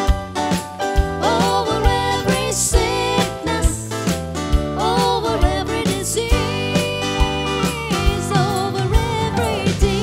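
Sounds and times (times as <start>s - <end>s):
drum kit steady beat: 0.0s - 10.0s
women singing together: 1.2s - 3.9s, 4.8s - 10.0s.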